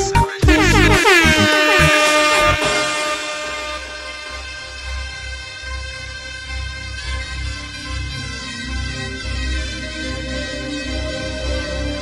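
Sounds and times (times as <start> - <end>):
dance music: 0.4 - 5.2
air horn sound effect: 0.4 - 5.8.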